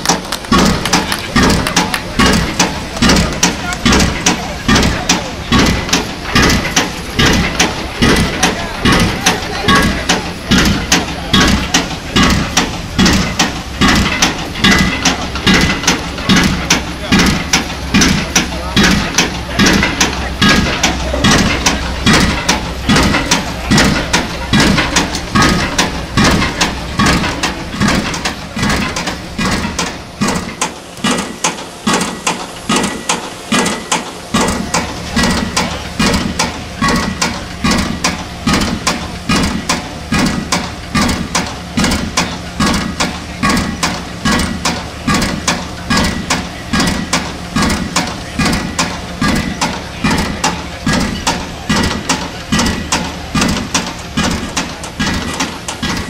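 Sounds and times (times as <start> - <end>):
low engine hum: 0.0 - 56.0
pile driver hammer striking: 0.0 - 56.0.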